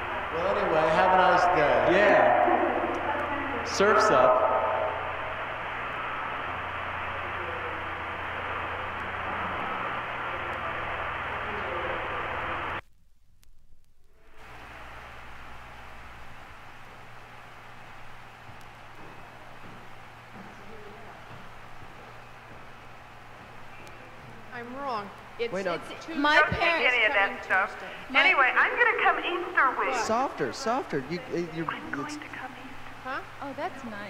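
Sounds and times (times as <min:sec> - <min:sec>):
telephone line hiss and hum: 0:00.0 - 0:34.0.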